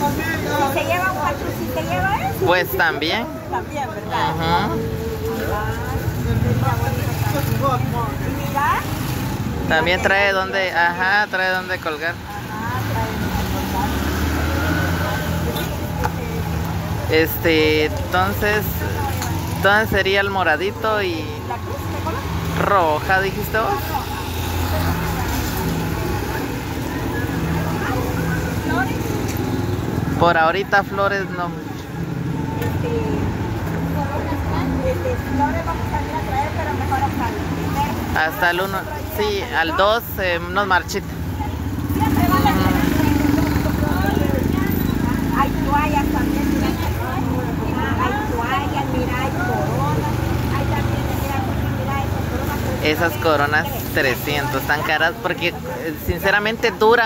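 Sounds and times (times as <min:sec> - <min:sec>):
vehicle engine humming: 0:00.0 - 0:56.9
street traffic: 0:00.0 - 0:57.0.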